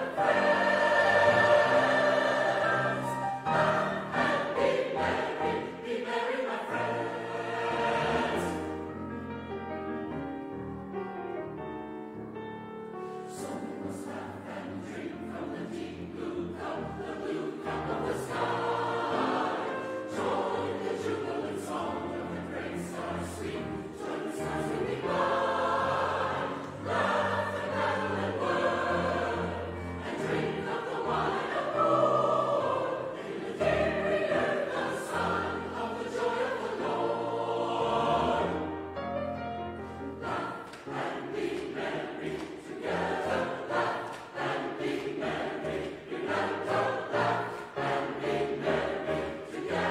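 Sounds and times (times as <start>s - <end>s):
mixed choir singing: 0.0s - 10.2s, 12.9s - 49.9s
piano accompaniment: 0.0s - 49.9s.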